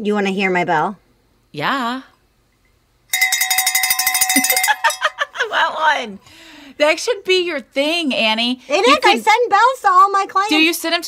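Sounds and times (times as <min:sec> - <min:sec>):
cowbell rung rapidly: 0:03.1 - 0:05.2.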